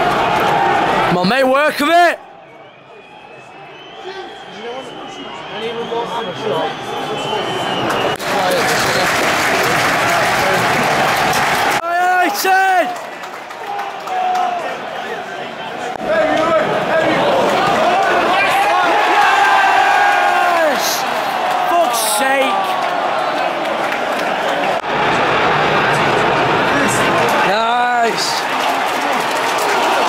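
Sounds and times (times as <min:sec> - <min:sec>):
crowd roaring and applauding: 0:00.0 - 0:02.2, 0:03.5 - 0:30.0
crowd voices: 0:13.6 - 0:30.0.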